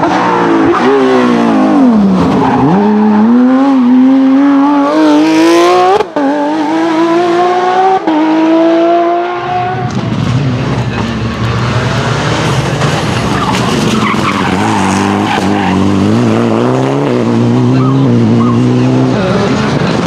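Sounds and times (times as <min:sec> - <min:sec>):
rally car engine revving: 0:00.0 - 0:20.0
tyres skidding on loose surface: 0:09.9 - 0:16.7.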